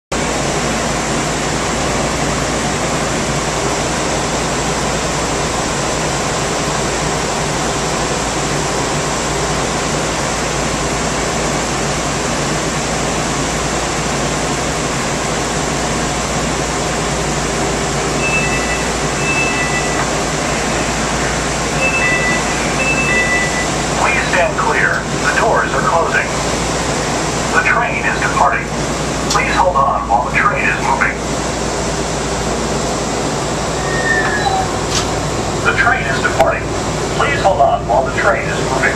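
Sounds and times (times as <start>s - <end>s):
air handling hiss and hum: 16.9s - 38.9s
two-tone chime beeps: 18.2s - 20.0s, 21.8s - 23.7s.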